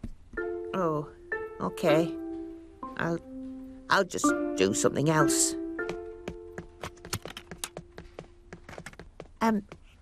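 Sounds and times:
held instrumental note: 0.4s - 8.7s
light footsteps on wooden floor: 2.1s - 3.7s, 5.1s - 10.0s.

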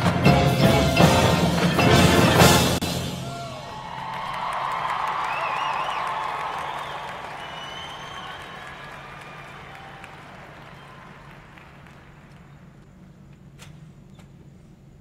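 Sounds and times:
crowd cheering: 0.0s - 12.8s
audience applause: 1.5s - 12.8s.

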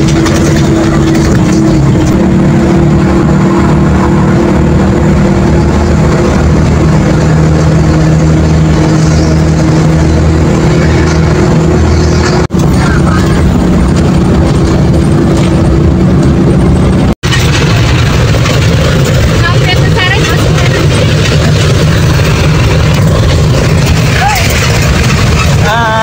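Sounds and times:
bus engine and road drone: 0.0s - 26.0s
hissy vehicle engine and road noise: 0.0s - 26.0s.

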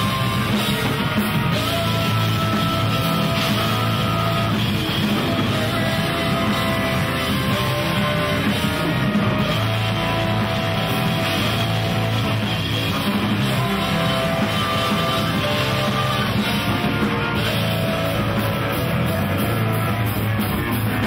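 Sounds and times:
heavy rock band playing: 0.0s - 21.0s.

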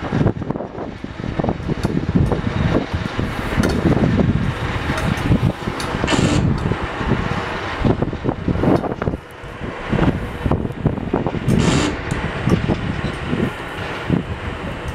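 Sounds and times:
wind buffeting microphone: 0.0s - 14.9s.

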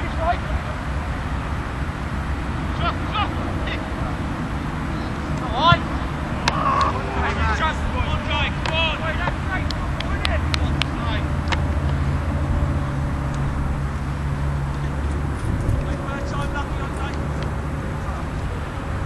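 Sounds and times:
steady low rumble: 0.0s - 19.0s
distant shouts of players: 4.9s - 11.3s.

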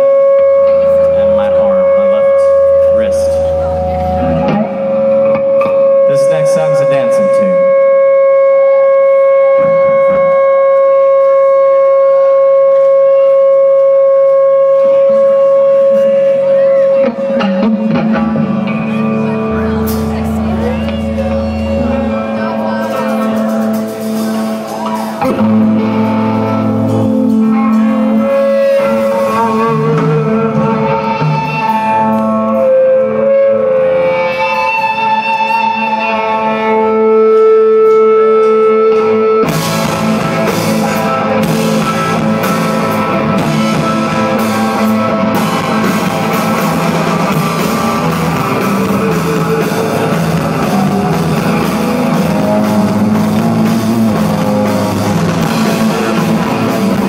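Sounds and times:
electric guitars playing: 0.0s - 57.0s
rock band with drums: 0.0s - 57.0s.

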